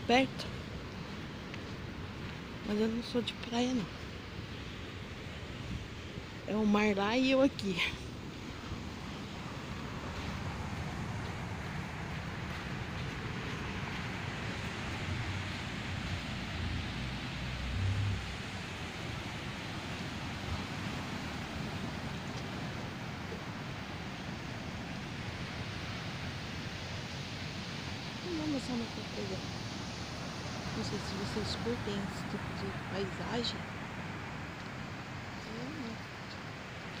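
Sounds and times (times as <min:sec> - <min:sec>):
ocean surf breaking: 0:00.0 - 0:37.0
wind rumble on microphone: 0:00.0 - 0:37.0.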